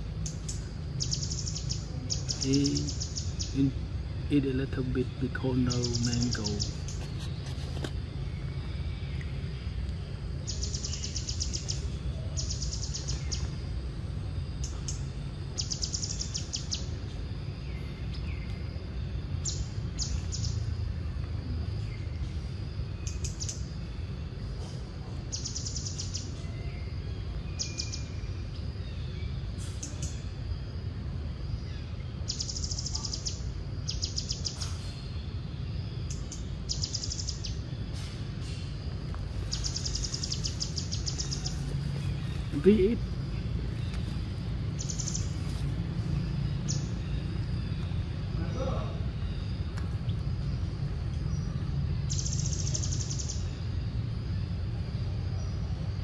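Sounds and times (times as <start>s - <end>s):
steady low rumble: 0.0s - 56.0s.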